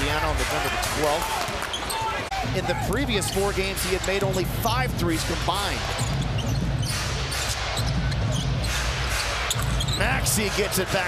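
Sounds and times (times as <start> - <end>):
arena crowd noise: 0.0 - 11.0
sneaker squeaks: 1.6 - 2.2, 5.9 - 10.2.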